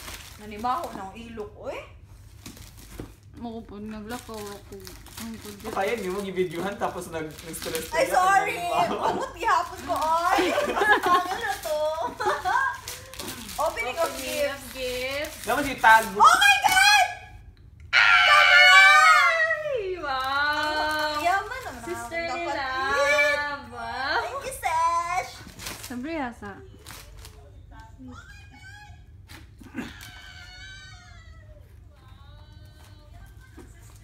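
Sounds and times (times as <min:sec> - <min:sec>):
woman squealing with delight: 0:18.0 - 0:19.9.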